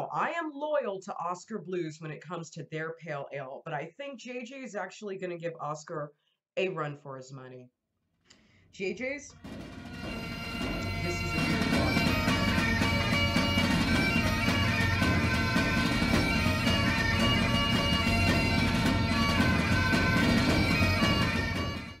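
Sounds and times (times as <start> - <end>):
bagpipe music: 9.4 - 22.0.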